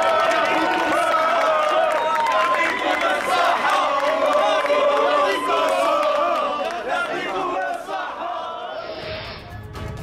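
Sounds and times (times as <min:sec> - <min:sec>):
crowd shouting: 0:00.0 - 0:09.0.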